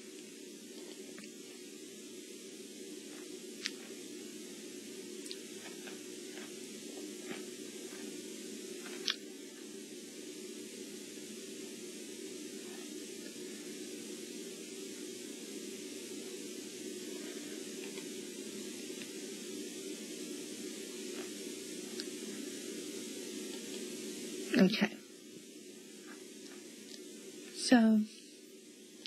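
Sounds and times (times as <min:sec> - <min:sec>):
background hiss: 0:00.0 - 0:29.0.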